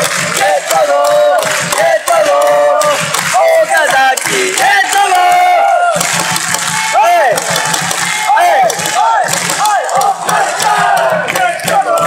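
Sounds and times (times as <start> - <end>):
crowd noise: 0.0 - 12.0
supporters chanting and shouting: 0.0 - 12.0.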